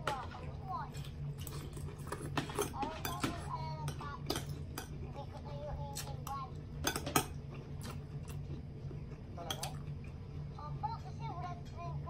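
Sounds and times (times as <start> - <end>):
cutlery clinking on ceramic bowl: 1.5 - 5.0, 6.8 - 7.4.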